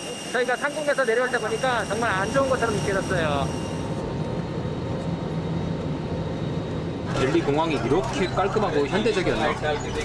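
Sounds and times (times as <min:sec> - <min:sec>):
airliner cabin engine rush: 0:00.0 - 0:10.0.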